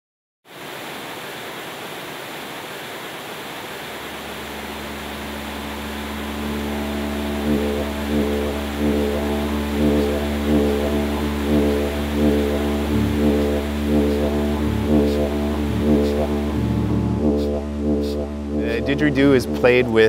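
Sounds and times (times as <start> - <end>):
river rushing: 0.5 - 16.6
didgeridoo drone: 4.2 - 20.0.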